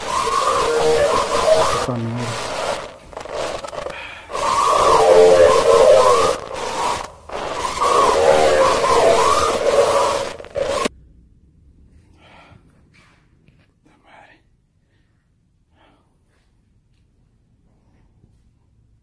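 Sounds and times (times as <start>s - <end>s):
hissing static with warbling tones: 0.0s - 10.9s.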